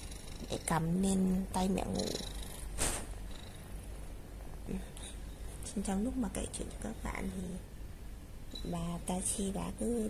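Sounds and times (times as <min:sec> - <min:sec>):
cat purring: 0:00.0 - 0:07.7.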